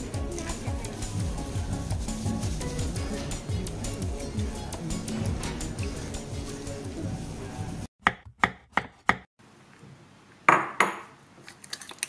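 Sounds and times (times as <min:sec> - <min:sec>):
background music: 0:00.0 - 0:07.9.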